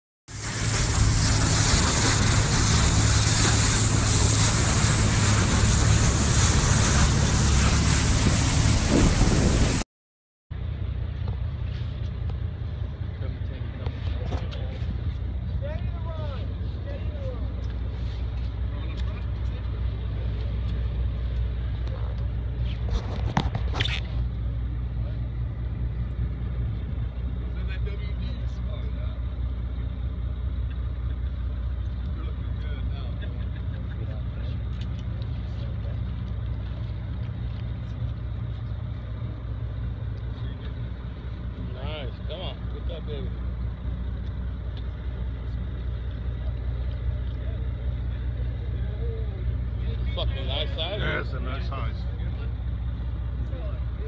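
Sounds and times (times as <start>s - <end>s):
boat engine rumbling: 0.3s - 9.8s, 10.5s - 54.0s
distant voices: 10.6s - 23.2s, 23.8s - 54.0s.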